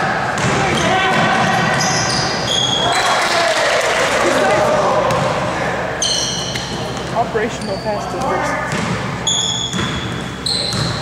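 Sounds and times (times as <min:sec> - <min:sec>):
players calling out: 0:00.0 - 0:11.0
sneaker squeaks: 0:00.4 - 0:03.6, 0:05.1 - 0:11.0
basketball bouncing on hardwood: 0:08.7 - 0:09.0, 0:10.7 - 0:11.0.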